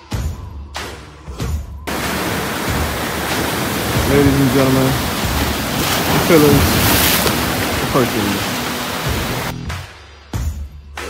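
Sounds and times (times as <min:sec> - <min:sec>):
surf washing against rocks: 0:01.9 - 0:09.5.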